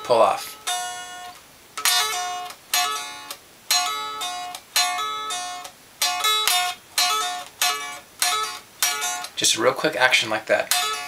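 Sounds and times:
electric guitar repeated lick: 0.6s - 9.4s, 10.6s - 11.0s.

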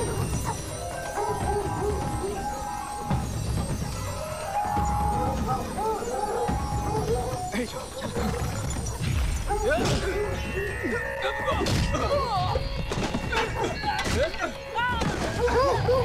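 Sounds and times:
people shouting and crying: 9.4s - 16.0s.

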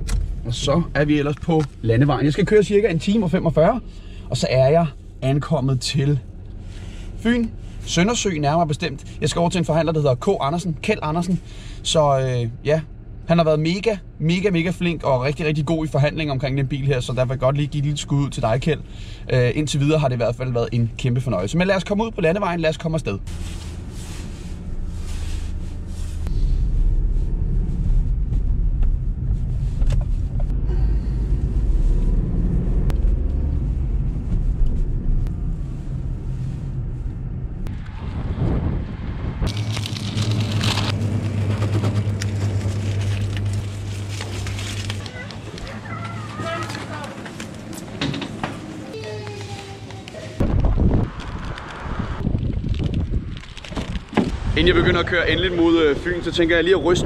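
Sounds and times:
car engine and road rumble: 0.0s - 57.0s
steady shop hum: 22.0s - 51.0s
paper bags rustling: 39.5s - 48.0s, 48.7s - 54.4s.

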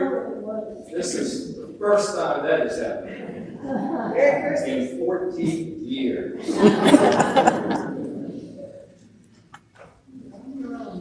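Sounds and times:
person speaking: 0.0s - 9.0s
chuckling laughter: 6.4s - 8.0s.

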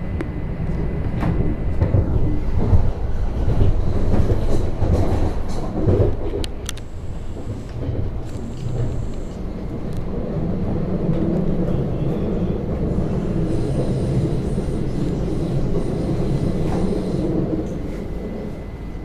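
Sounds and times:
train wheels rumbling on track: 0.0s - 19.0s
faint high whine: 13.4s - 19.0s.

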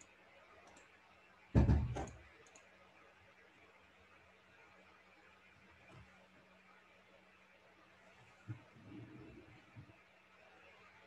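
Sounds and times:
faint clicks: 0.0s - 1.0s, 2.1s - 2.8s.

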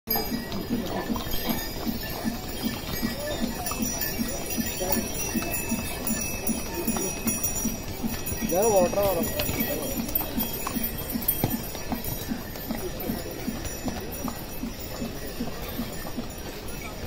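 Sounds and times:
harness bells jingling: 0.1s - 17.0s
hooves clip-clopping on stone: 0.1s - 17.0s.

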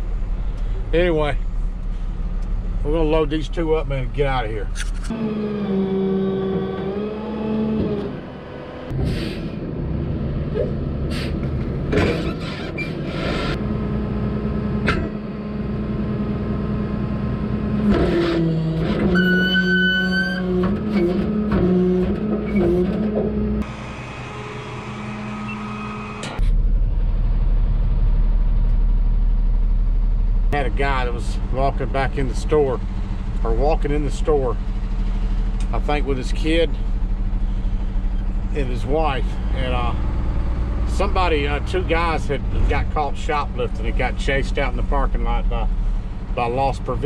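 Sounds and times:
low engine rumble in cab: 0.0s - 47.0s
truck engine running: 0.0s - 47.0s
brief high whine: 23.6s - 26.5s.

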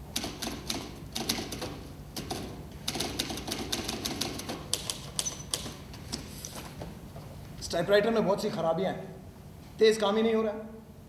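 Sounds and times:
typewriter keys clacking: 0.2s - 5.8s.

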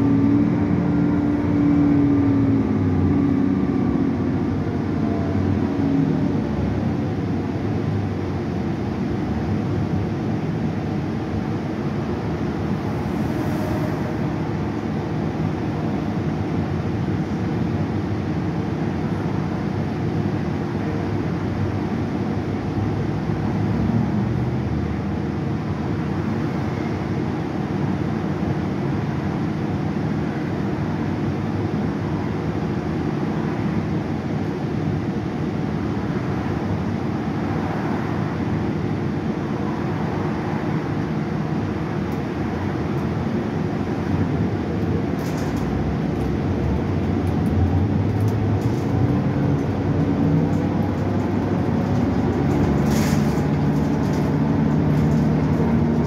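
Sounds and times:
bus engine drone: 0.0s - 56.0s
road noise: 0.0s - 56.0s.

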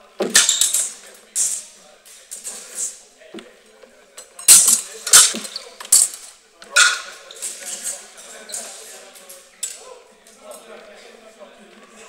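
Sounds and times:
steel swords clashing: 4.4s - 6.2s.

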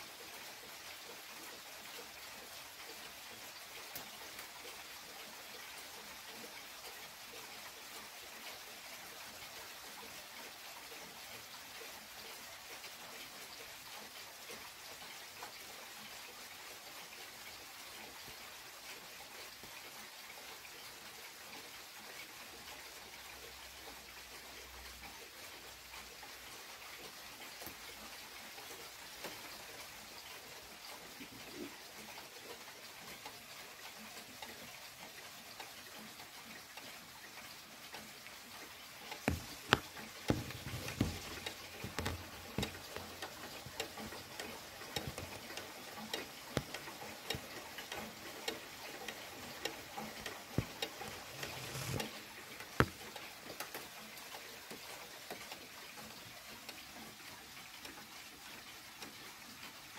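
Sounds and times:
pendulum clock ticking: 0.0s - 59.9s
steady hiss: 17.1s - 54.1s.

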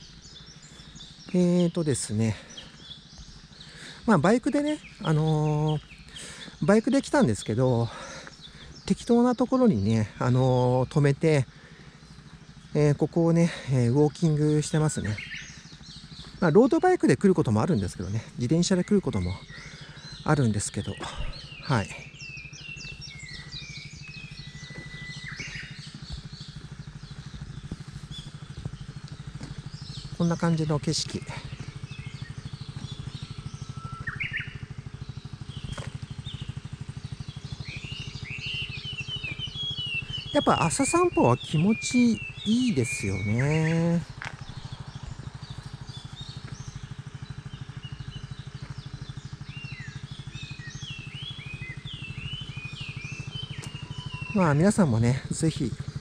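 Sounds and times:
birds singing: 0.0s - 56.0s
long steady bird whistle: 0.0s - 56.0s
motorcycle engine idling: 0.0s - 56.0s.

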